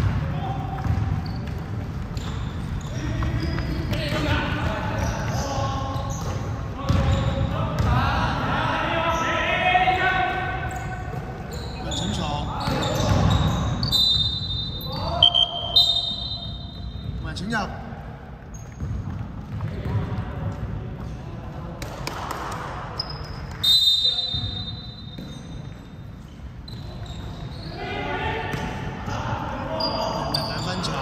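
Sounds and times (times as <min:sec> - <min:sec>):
basketball bouncing on wood floor: 0:00.0 - 0:02.4, 0:06.1 - 0:07.9, 0:18.6 - 0:21.1.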